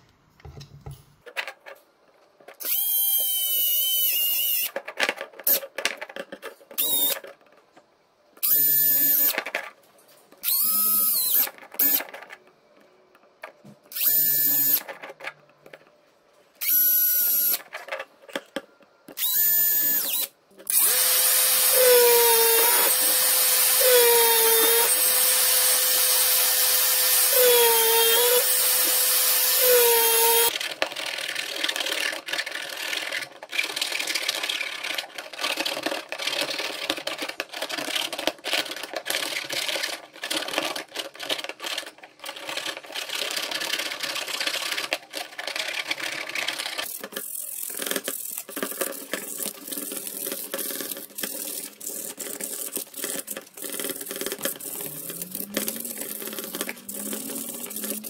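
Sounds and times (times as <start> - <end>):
power drill cutting plastic pipe: 2.6 - 4.8, 6.8 - 7.2, 8.4 - 9.4, 10.4 - 12.1, 13.9 - 14.9, 16.6 - 17.7, 19.2 - 30.6, 47.6 - 58.0
hand tool scraping plastic: 29.6 - 58.0.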